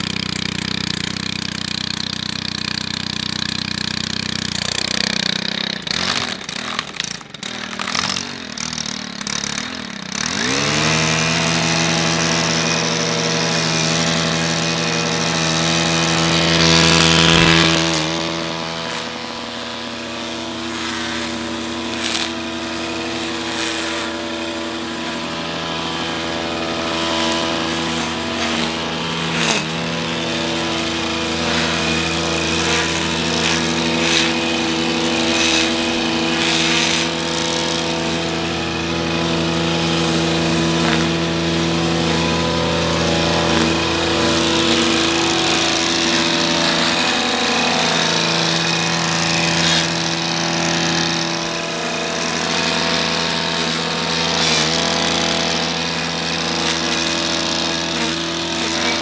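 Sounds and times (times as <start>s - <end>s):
brushcutter engine running: 0.0s - 59.0s
nylon line cutting grass: 0.0s - 59.0s.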